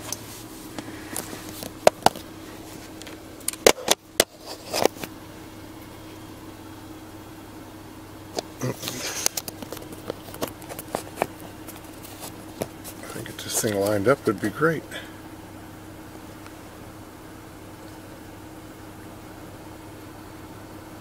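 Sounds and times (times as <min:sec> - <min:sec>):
vehicle engine humming: 0:00.0 - 0:21.0
small clicks and rustles: 0:08.3 - 0:14.0.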